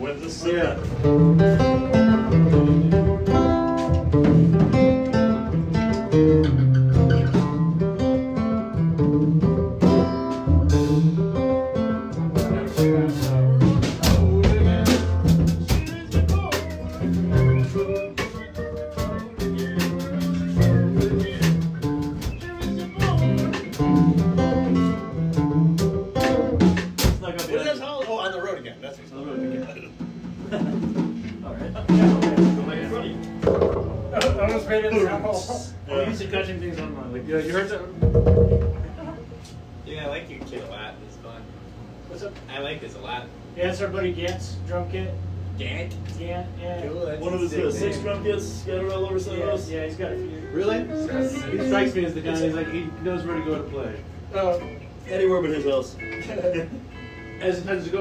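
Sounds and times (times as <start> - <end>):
drum kit: 0.5 - 28.0, 29.3 - 37.0, 37.9 - 39.4
plucked guitar: 0.8 - 27.2, 29.3 - 37.0, 37.9 - 39.6, 46.8 - 58.0
bass line: 0.8 - 27.3, 30.9 - 36.7, 43.6 - 55.2.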